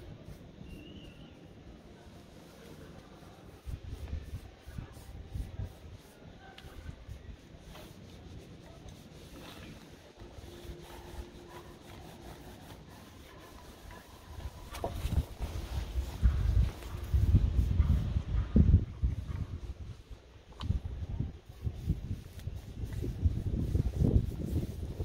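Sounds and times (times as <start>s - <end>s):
paintbrush strokes on wood: 0.0s - 25.0s
wind buffeting microphone: 3.6s - 6.1s, 14.1s - 25.0s.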